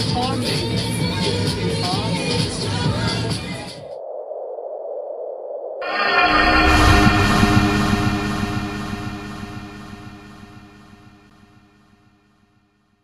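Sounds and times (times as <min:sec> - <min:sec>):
low rumble: 0:05.8 - 0:11.8
sustained synth chord: 0:05.8 - 0:12.1.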